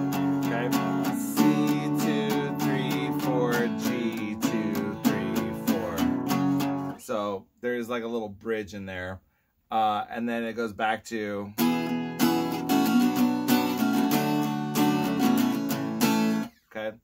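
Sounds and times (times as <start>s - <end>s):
acoustic guitar strumming: 0.0s - 7.0s, 11.6s - 16.6s.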